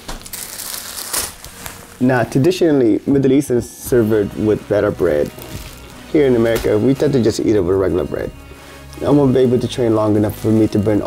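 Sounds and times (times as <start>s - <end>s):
plastic bag crinkling: 0.0s - 2.7s, 4.0s - 11.0s.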